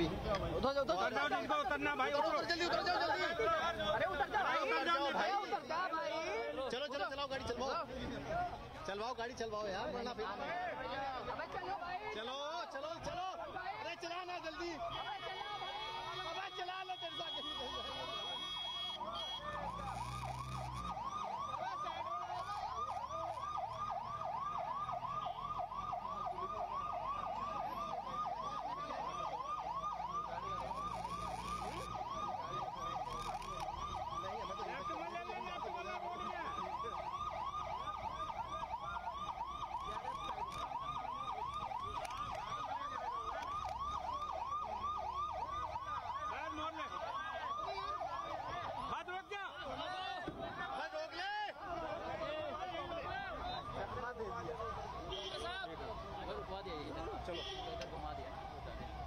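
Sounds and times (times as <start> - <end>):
siren yelping: 0.9 - 7.2, 9.7 - 59.0.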